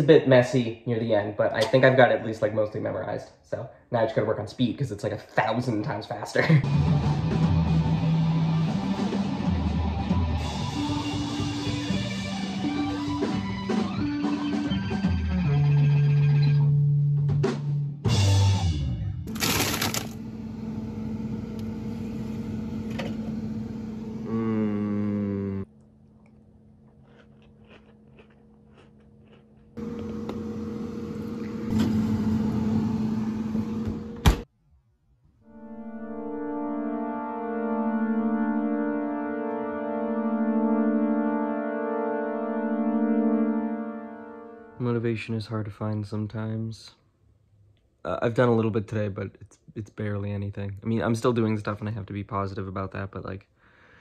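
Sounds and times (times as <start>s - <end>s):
sustained synthesizer chords: 35.4s - 44.8s.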